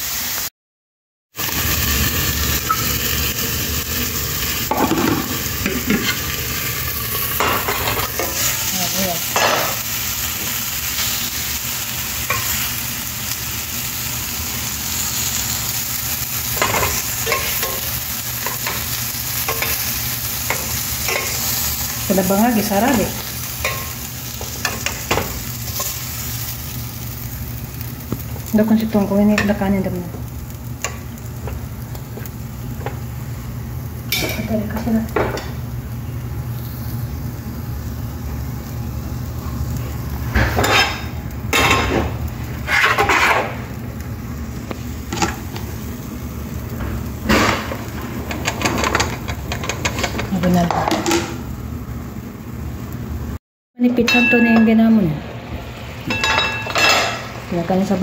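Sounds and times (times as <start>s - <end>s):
chicken sizzling in hot oil: 0.0s - 0.5s, 1.3s - 53.4s
tongs clicking and scraping pans: 7.3s - 9.8s, 16.5s - 26.0s, 47.3s - 51.4s.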